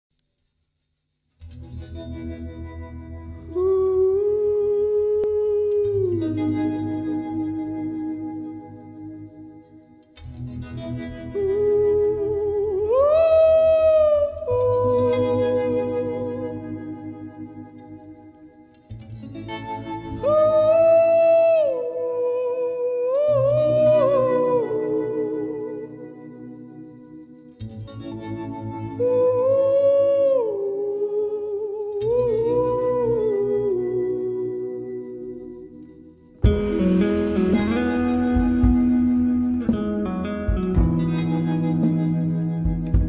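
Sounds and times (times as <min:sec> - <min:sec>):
soft band accompaniment: 0:36.4 - 0:43.0.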